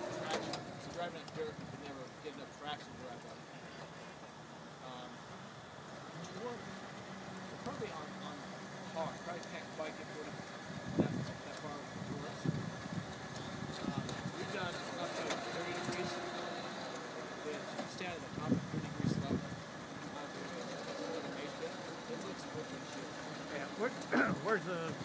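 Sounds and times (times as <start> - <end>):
people talking indistinctly: 0.0 - 5.3, 6.0 - 25.0.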